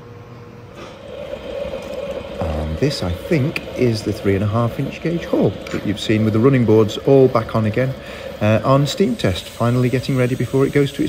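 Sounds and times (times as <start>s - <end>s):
thin steady hum: 0.0s - 11.0s
steam hissing from model locomotive: 1.0s - 11.0s.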